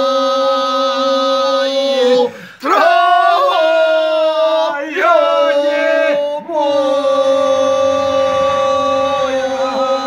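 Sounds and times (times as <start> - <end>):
men singing unaccompanied folk song: 0.0 - 10.0.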